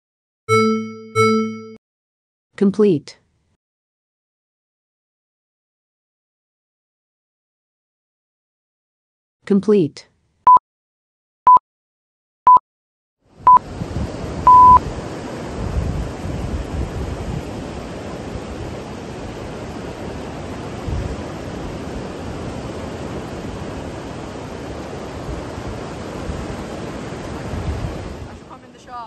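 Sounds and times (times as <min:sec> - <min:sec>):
interval timer beeps: 0:00.5 - 0:01.8, 0:14.5 - 0:14.8
surf breaking on shore: 0:13.4 - 0:29.0
wind gusting on microphone: 0:13.4 - 0:29.0.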